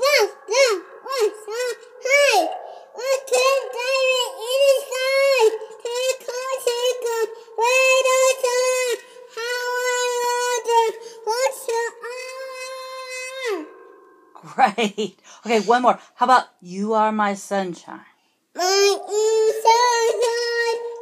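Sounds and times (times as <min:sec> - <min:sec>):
toddler singing: 0:00.0 - 0:13.8, 0:18.6 - 0:21.0.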